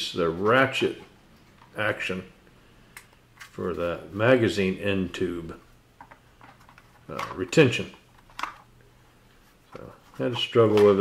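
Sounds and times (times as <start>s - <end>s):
person speaking: 0.0s - 2.5s, 3.4s - 5.8s, 7.0s - 8.1s, 9.4s - 11.0s.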